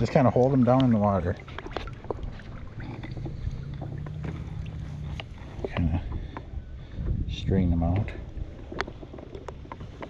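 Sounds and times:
water splashing and dripping: 0:00.0 - 0:06.5
low steady rumble: 0:00.4 - 0:09.7.

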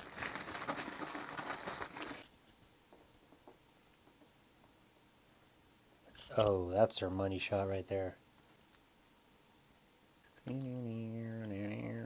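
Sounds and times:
plastic bag crinkling: 0:00.0 - 0:02.3.

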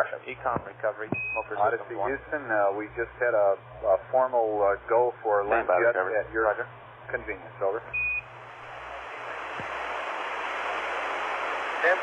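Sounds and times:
radio static hiss: 0:00.0 - 0:08.0, 0:08.6 - 0:12.0.

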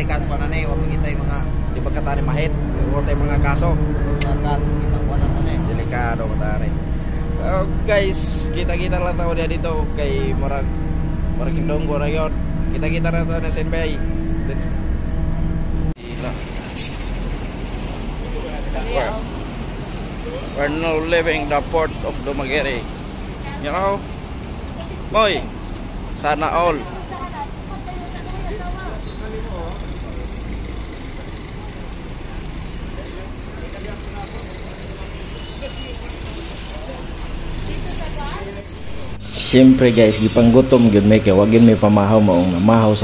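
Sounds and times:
indistinct voices: 0:00.0 - 0:43.0
low traffic engine sound: 0:00.0 - 0:43.0
faint voices: 0:26.3 - 0:43.0.

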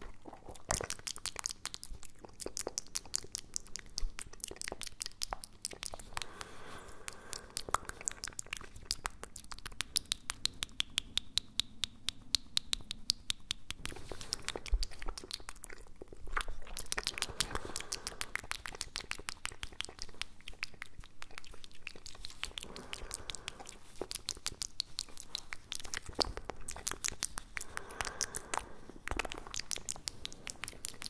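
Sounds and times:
wet mouth clicks and smacks: 0:00.0 - 0:31.0.

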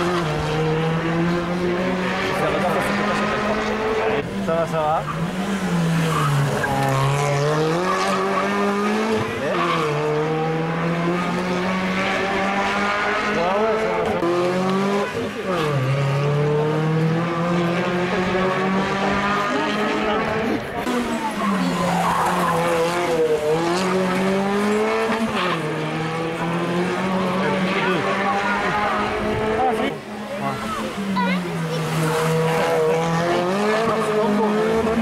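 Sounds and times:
rally car engine revving: 0:00.0 - 0:35.0.

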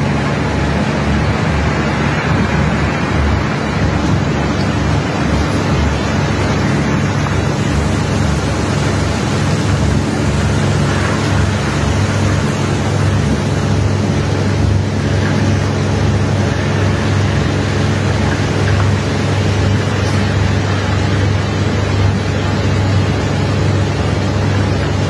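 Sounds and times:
deep engine hum: 0:00.0 - 0:25.0
loud even rushing noise: 0:00.0 - 0:25.0.

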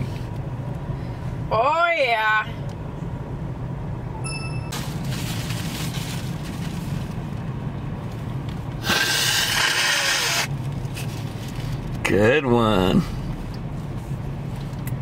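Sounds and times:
idling car cabin hum: 0:00.0 - 0:15.0
person blowing nose: 0:08.8 - 0:10.5.

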